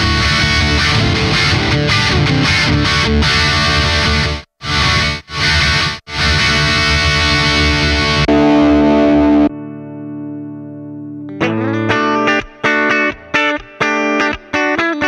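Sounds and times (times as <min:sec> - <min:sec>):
electric guitar chords: 0:00.0 - 0:15.0.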